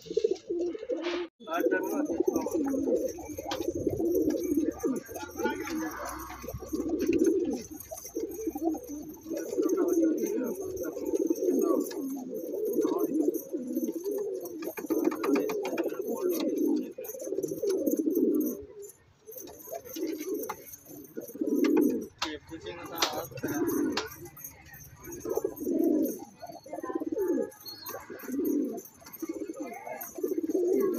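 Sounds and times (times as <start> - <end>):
pigeon cooing: 0.0 - 30.9.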